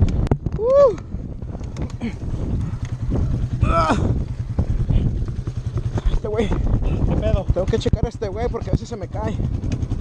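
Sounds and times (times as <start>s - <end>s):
dirt bike engine idling: 0.0s - 10.0s
wind on microphone: 0.0s - 10.0s
person exclaiming: 0.6s - 1.0s, 3.6s - 4.2s.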